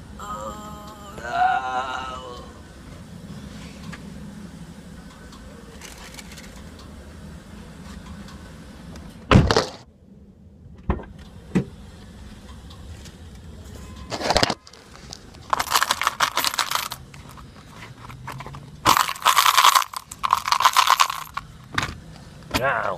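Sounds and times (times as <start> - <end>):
phone handling rustling and clattering: 14.0 - 22.0.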